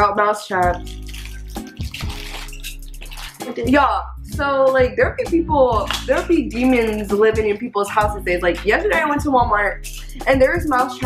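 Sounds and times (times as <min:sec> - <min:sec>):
background music: 0:00.0 - 0:11.0
plastic packaging crinkling: 0:00.7 - 0:03.6.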